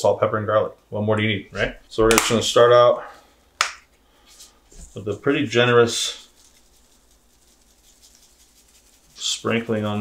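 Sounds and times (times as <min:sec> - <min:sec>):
seasoning shaker patter: 0:04.4 - 0:10.0.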